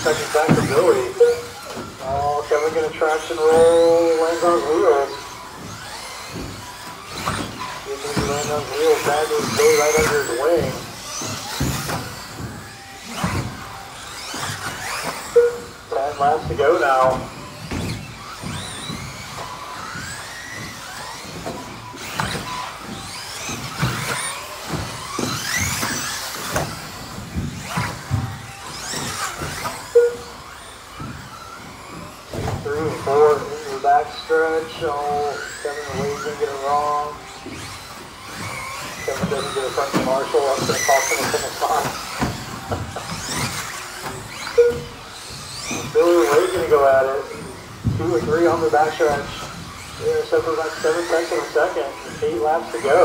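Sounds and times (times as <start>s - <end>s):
rc car motors whining: 0.0s - 53.0s
rc cars clacking on track: 0.0s - 53.0s
loud beep: 15.3s - 15.7s, 30.0s - 30.3s, 44.6s - 44.9s.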